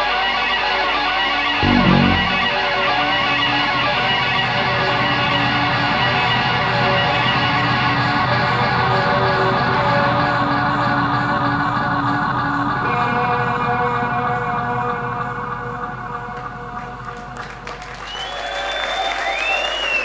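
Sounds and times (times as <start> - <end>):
live band sustained chords: 1.6 - 2.6
audience applause: 17.4 - 20.0.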